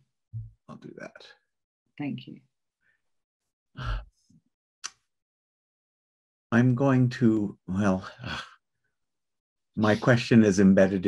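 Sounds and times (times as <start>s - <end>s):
man speaking: 0.7s - 1.3s, 3.8s - 4.0s, 6.6s - 8.4s, 9.8s - 11.0s.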